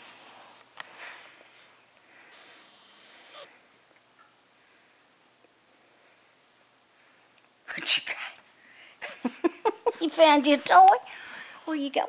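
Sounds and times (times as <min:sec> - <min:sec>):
shuffling on carpet: 0:00.0 - 0:01.8.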